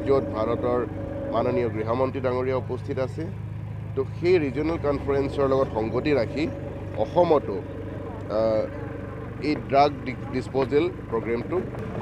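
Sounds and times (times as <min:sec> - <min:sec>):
man talking: 0:00.0 - 0:03.4, 0:04.0 - 0:07.6, 0:09.4 - 0:11.7
heavy machinery engine hum: 0:00.0 - 0:12.0.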